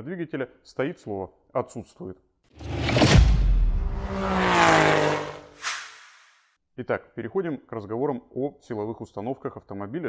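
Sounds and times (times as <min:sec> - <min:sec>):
car engine revving past: 0:02.6 - 0:06.3
short whoosh: 0:02.6 - 0:06.4.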